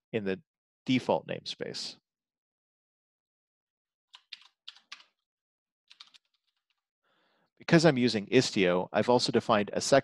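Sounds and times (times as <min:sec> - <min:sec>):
computer keyboard key taps: 0:04.2 - 0:05.1.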